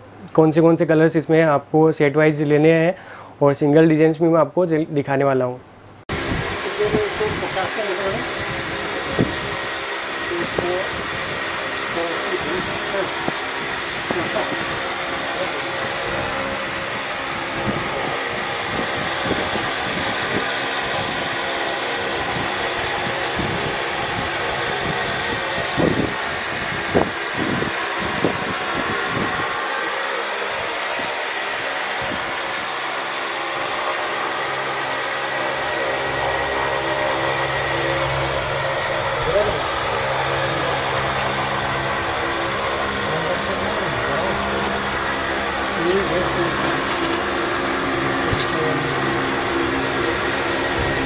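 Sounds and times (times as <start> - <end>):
mechanical hum: 0.0 - 51.0
low hum: 5.8 - 51.0
distant indistinct voices: 35.6 - 51.0.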